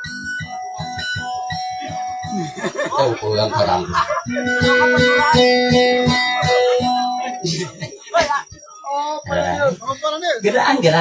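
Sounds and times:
plucked boat lute: 0.0 - 8.4
lively voices: 0.0 - 11.0
people laughing: 1.8 - 8.8.

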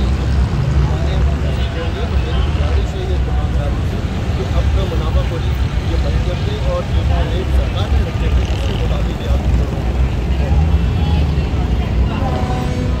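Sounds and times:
low rumble of street noise: 0.0 - 13.0.

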